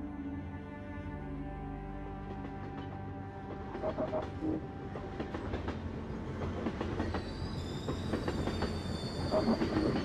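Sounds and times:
train rumbling on rails: 0:01.5 - 0:10.0
high wheel squeal: 0:07.2 - 0:10.0.

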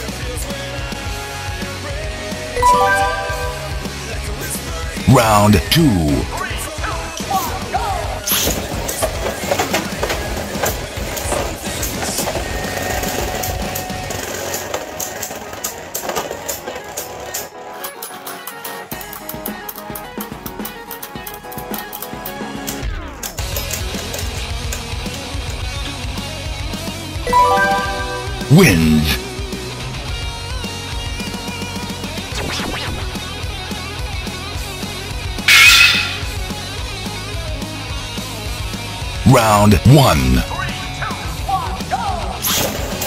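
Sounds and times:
background music: 0:02.4 - 0:06.7, 0:27.3 - 0:29.6, 0:39.1 - 0:41.2.

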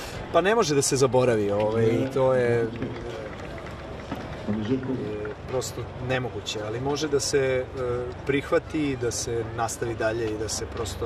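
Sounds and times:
outdoor background hiss: 0:00.0 - 0:11.0
man speaking: 0:01.1 - 0:03.3.

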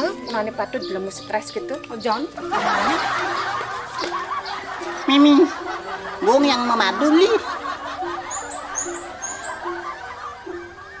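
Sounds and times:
light tune with repeated notes: 0:00.0 - 0:11.0.

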